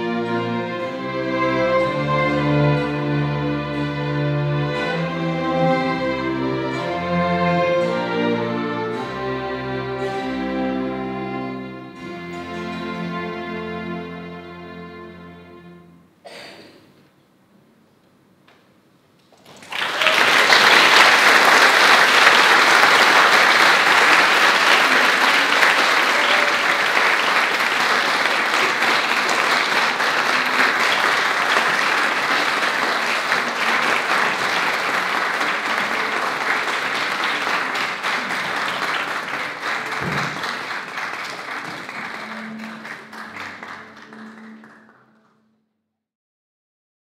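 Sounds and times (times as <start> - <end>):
audience applauding: 19.3 - 45.4.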